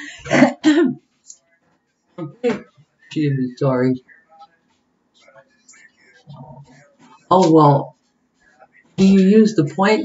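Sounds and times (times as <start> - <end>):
woman clearing her throat: 0.1 - 1.0.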